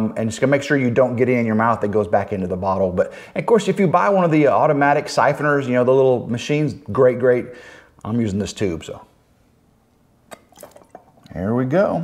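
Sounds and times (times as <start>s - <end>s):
liquid in siphon tube: 10.3s - 11.4s.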